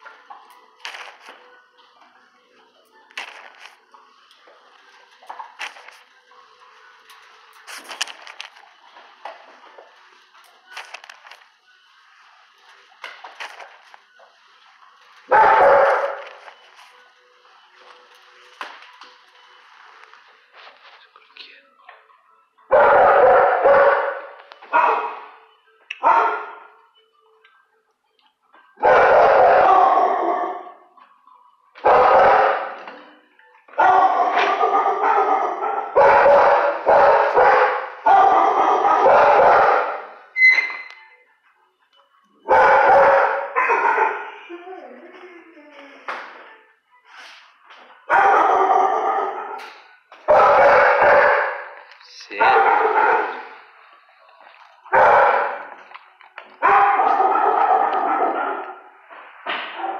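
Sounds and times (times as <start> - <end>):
dog barking with echo: 15.3 - 16.2, 22.7 - 25.4, 26.0 - 26.7, 28.8 - 30.8, 31.8 - 32.9, 33.8 - 40.2, 42.5 - 44.4, 48.1 - 51.8, 52.4 - 53.6, 54.9 - 55.6, 56.6 - 58.9.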